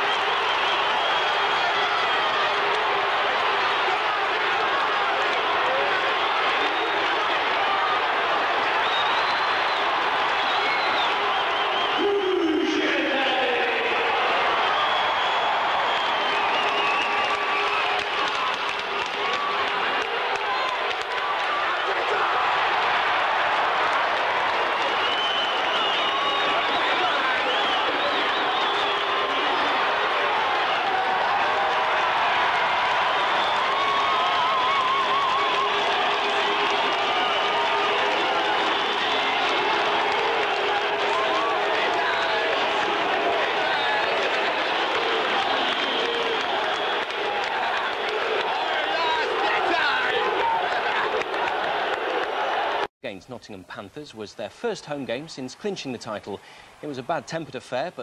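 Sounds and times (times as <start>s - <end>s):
crowd cheering and shouting: 0.0s - 52.9s.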